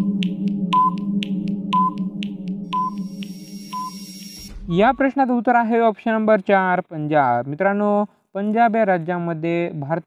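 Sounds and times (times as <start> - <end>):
rapid timer ticking: 0.0 - 4.4
electronic drone: 0.0 - 5.1
short beeps: 1.7 - 2.0, 2.7 - 4.7
person speaking: 4.6 - 10.0.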